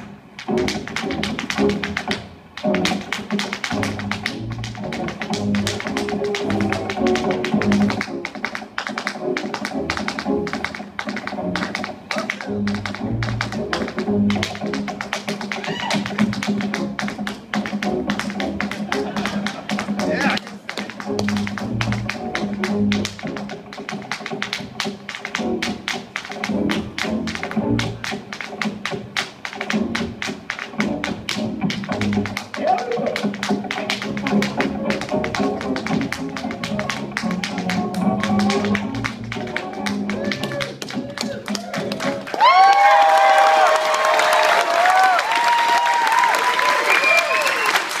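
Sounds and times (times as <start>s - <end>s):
latin-flavoured music: 0.0s - 42.4s
tap shoes on wooden board: 0.4s - 46.2s
audience cheering and whooping: 15.6s - 16.1s, 39.6s - 48.0s.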